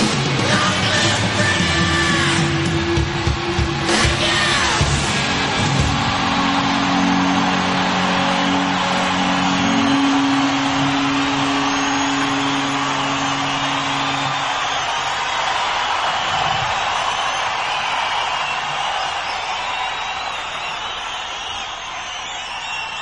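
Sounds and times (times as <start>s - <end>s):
rock band closing chord: 0.0s - 17.0s
stadium crowd cheering: 0.0s - 23.0s.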